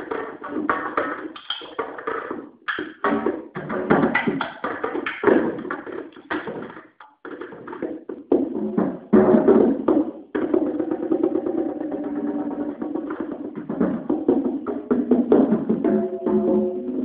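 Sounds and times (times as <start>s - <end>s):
drum kit played with sticks: 0.0s - 17.0s.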